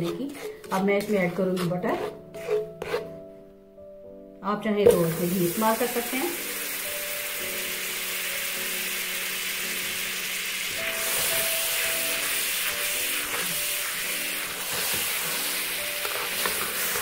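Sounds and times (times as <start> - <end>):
spatula stirring and scraping: 0.0 - 3.2, 10.7 - 17.0
butter sizzling in wok: 4.9 - 17.0.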